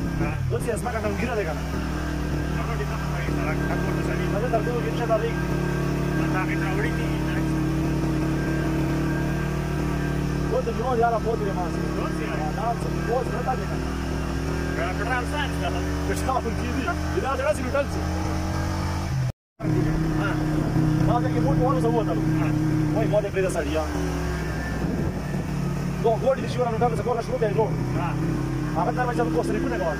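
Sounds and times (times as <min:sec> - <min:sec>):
vehicle engine droning: 0:00.0 - 0:29.9.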